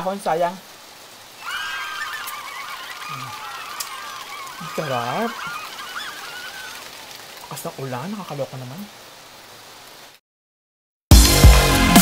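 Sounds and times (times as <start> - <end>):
high-pitched animal cries: 1.4 - 7.1.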